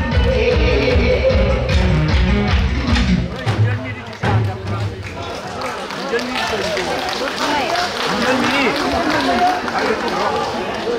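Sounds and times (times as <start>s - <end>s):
backing music: 0.0s - 5.0s.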